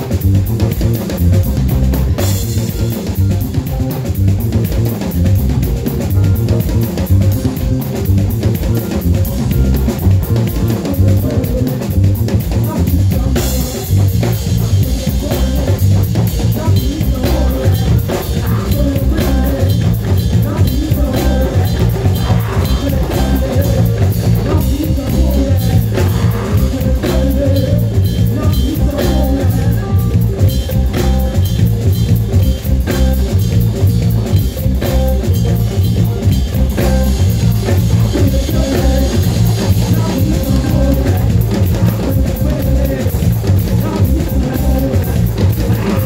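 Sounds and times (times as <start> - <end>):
drum kit beat: 0.0 - 46.0
electric bass: 0.0 - 46.0.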